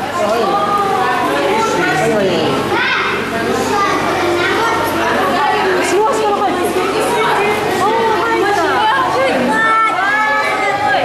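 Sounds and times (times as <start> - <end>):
children's voices: 0.0 - 11.0
spectators talking: 0.0 - 11.0.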